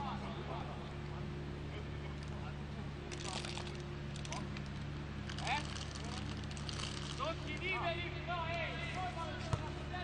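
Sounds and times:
steady low hum: 0.0 - 10.0
football being kicked: 9.5 - 9.8.

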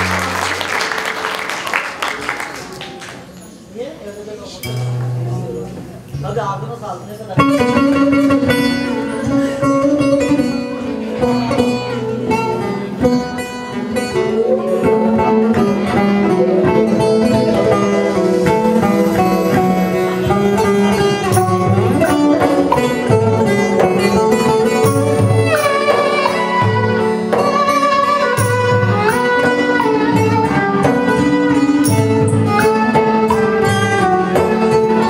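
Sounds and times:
long-necked lute plucked: 4.6 - 6.5, 7.3 - 35.0
violin bowing: 7.4 - 35.0.

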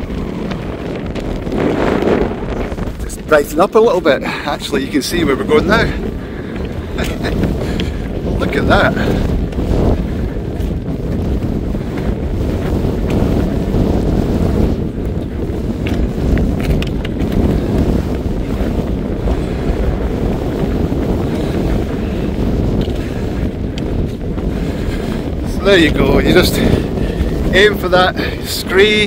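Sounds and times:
strong wind buffeting microphone: 0.0 - 29.0.

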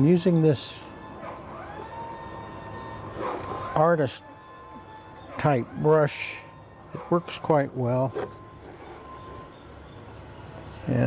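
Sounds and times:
siren tone: 0.7 - 10.9.

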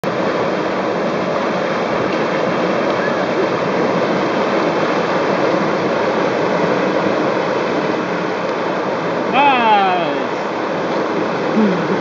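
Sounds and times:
river rapids rushing: 0.0 - 12.0.

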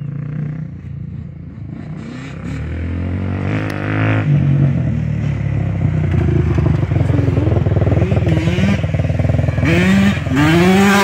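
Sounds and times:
quad engine running hard: 0.0 - 11.0.

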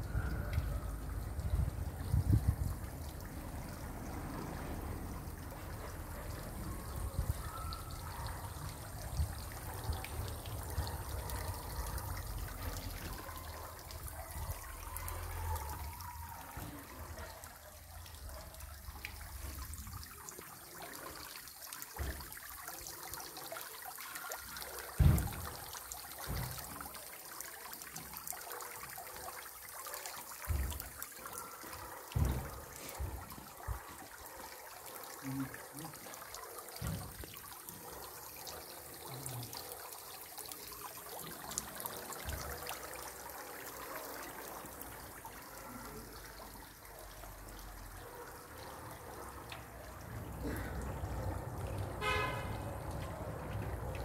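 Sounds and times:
fountain water splashing into basin: 0.0 - 54.0.

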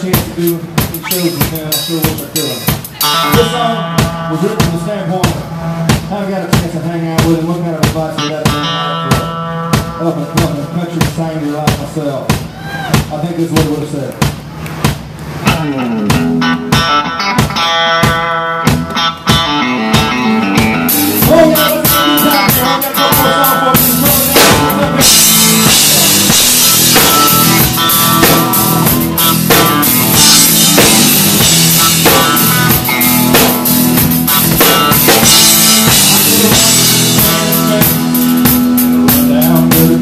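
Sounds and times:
country-rock band playing: 0.0 - 14.0, 14.6 - 40.0
drums and cymbals: 0.0 - 40.0
electric guitar notes: 0.9 - 6.2, 8.1 - 11.0, 15.4 - 40.0.

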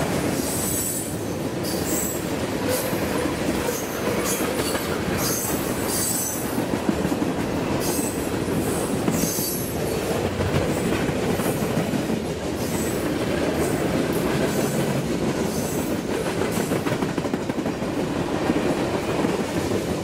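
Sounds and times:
steel wheels rumbling on rail: 0.0 - 20.0.

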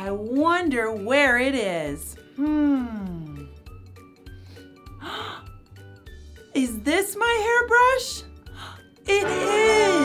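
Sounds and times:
children's music with repeating beat: 0.0 - 10.0.

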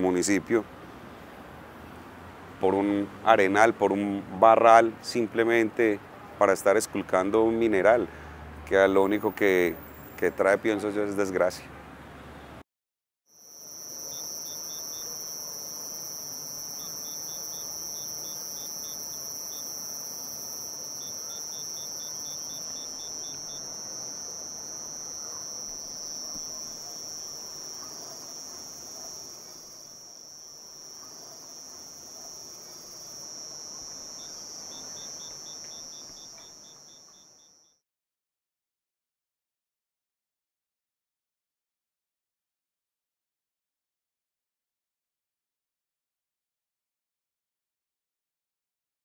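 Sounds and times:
faint background noise: 0.0 - 12.6
cricket trill: 13.3 - 37.8
insect rapid chirps: 13.3 - 37.8.

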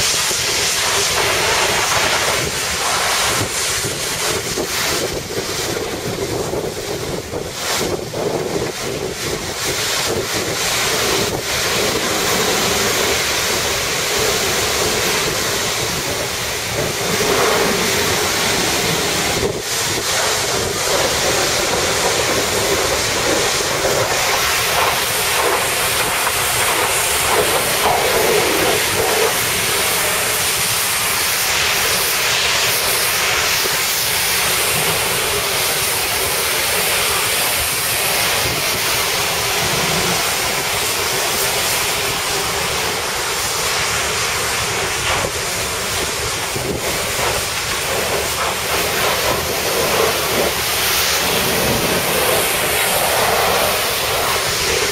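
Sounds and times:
sea rushing: 0.0 - 54.9
wind rushing over ship deck: 0.0 - 54.9.

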